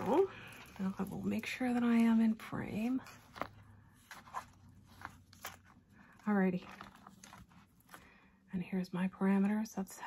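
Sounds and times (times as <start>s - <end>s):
hands sliding paper journal: 0.0s - 8.0s.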